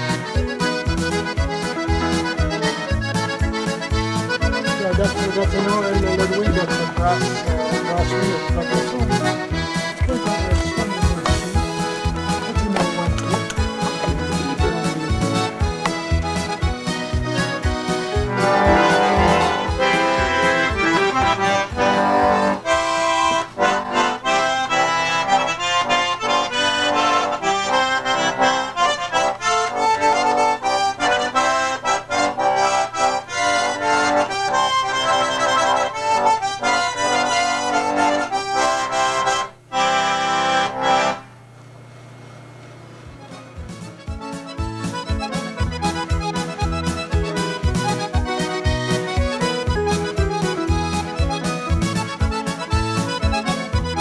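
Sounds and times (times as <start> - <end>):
button accordion playing: 0.0 - 41.4, 43.1 - 54.0
low background hum: 36.7 - 43.7.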